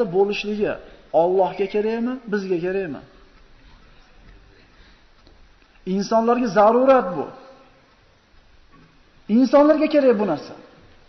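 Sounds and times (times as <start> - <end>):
man lecturing: 0.0 - 3.1, 5.8 - 7.6, 9.3 - 10.8.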